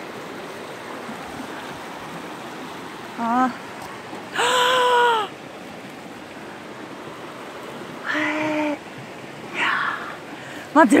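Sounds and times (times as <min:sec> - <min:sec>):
stream rushing: 0:00.0 - 0:11.0
woman's wordless vocal sounds: 0:09.5 - 0:10.8.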